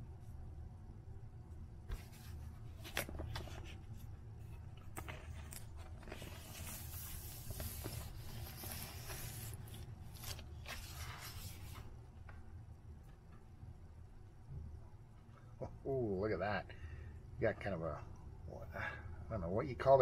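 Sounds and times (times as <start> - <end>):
vinyl disc sliding against sleeve: 4.9 - 11.9.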